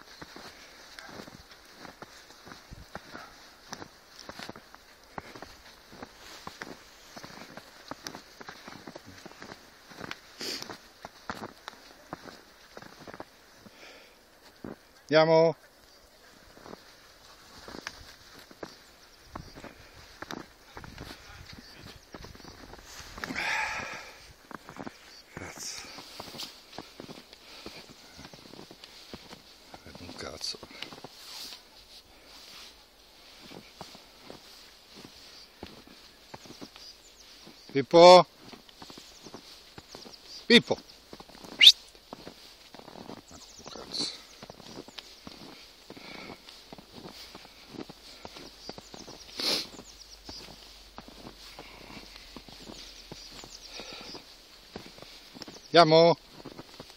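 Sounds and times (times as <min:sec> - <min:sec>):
footsteps crunching in snow: 0:00.0 - 0:56.9.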